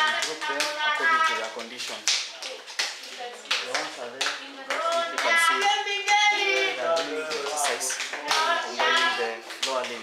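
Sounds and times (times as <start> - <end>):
children clapping: 0.0 - 10.0
voices speaking: 2.4 - 9.5.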